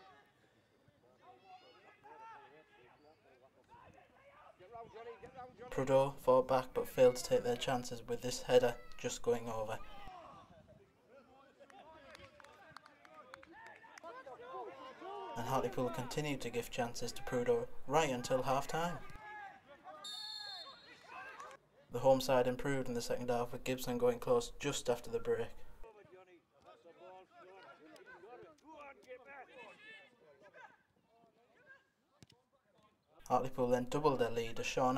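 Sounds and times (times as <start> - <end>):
faint voices shouting and calling: 0.0 - 5.6.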